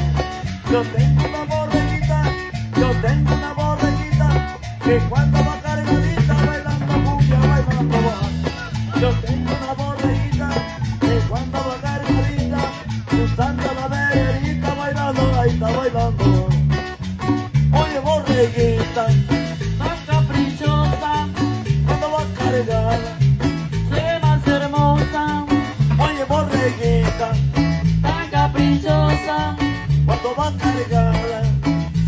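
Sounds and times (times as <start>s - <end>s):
pulsing bass beat: 0.0s - 32.0s.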